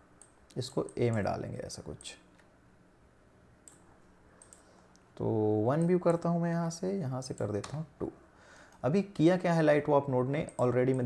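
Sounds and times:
low steady hum: 0.0 - 11.0
faint computer mouse clicks: 0.2 - 1.3, 3.6 - 5.1.

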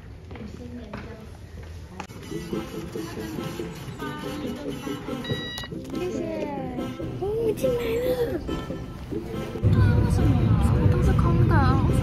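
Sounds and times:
short electronic beep: 5.2 - 5.7.

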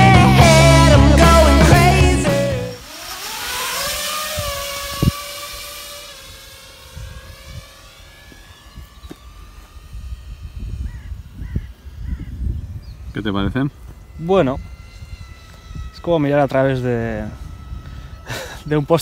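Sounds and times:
quadcopter motors whining: 0.0 - 19.0
wind rumble on microphone: 3.9 - 19.0.

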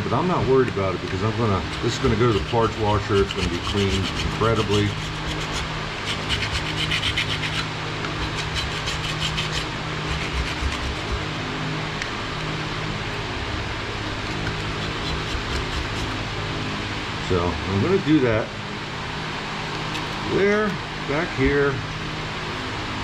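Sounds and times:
scraper blade scraping metal: 1.4 - 11.3, 14.3 - 16.2.

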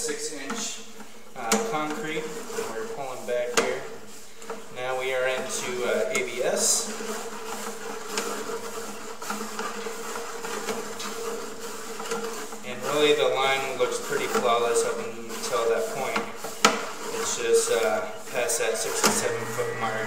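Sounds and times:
steady electrical buzz: 18.9 - 20.0.

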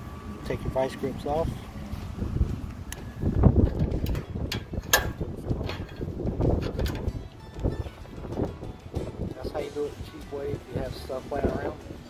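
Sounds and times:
wind buffeting microphone: 0.2 - 12.0
metal latch pin clicks: 3.7 - 6.0, 6.6 - 7.2.

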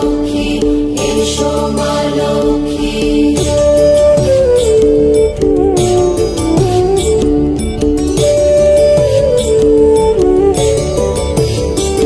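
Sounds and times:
devotional song: 0.0 - 7.8
light percussion: 0.0 - 12.0.

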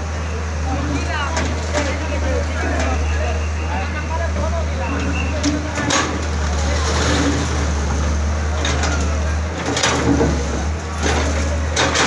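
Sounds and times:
diesel engine running under load: 0.0 - 12.0.

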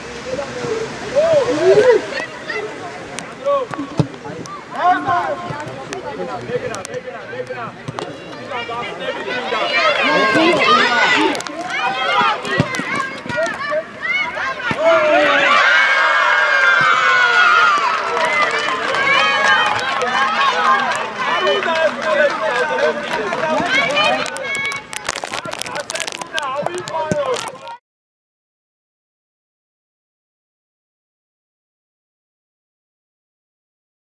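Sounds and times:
children shouting and cheering: 1.1 - 3.7, 8.4 - 27.8.

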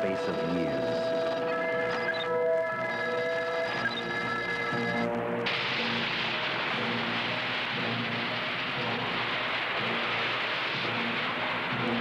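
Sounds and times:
faint music: 0.0 - 12.0
rocket motor rushing noise: 5.5 - 12.0.

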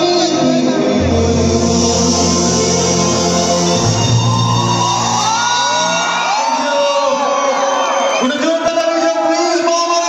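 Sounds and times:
bass guitar: 0.0 - 6.0
live band playing: 0.0 - 6.6
crowd shouting and whooping: 3.0 - 10.0.

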